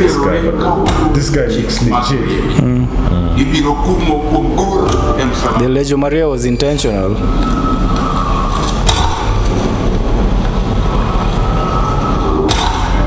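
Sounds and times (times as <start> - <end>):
deep rumble: 0.0 - 13.0
sharp hit: 8.6 - 13.0.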